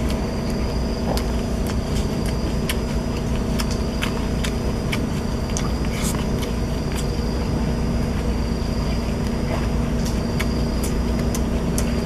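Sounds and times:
mouth clicks and smacks chewing: 0.0 - 12.0
steady low rumble: 0.0 - 12.0.

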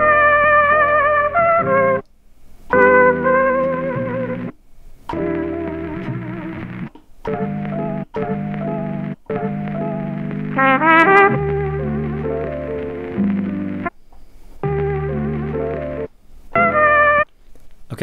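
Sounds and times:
muffled sampled music phrases: 0.0 - 2.0, 2.7 - 17.4.

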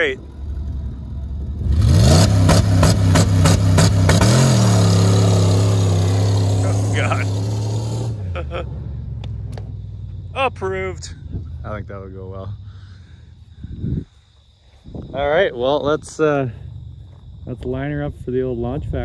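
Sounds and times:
engine revving hard: 1.6 - 8.6.

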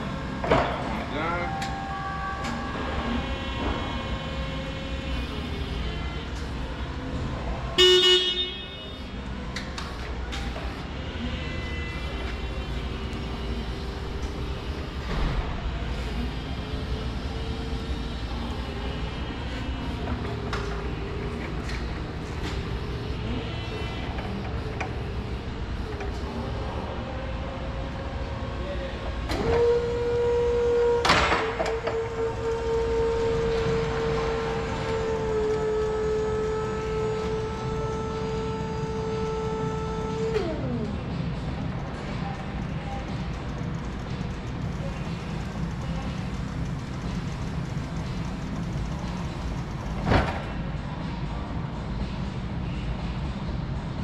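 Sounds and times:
electric forklift motor whining: 0.0 - 41.2
hydraulic pump whine: 0.0 - 50.6
horn beep: 7.8 - 9.2.

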